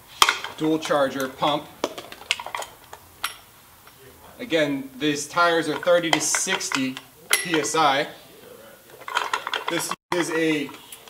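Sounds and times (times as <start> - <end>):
pump hose clicks and clinks: 9.0 - 11.0.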